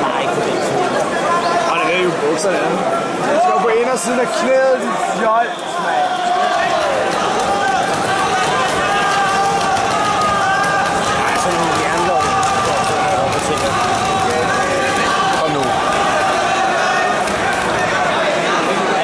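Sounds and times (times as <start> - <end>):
crowd shouting: 1.0 - 19.0
long shout: 6.0 - 19.0.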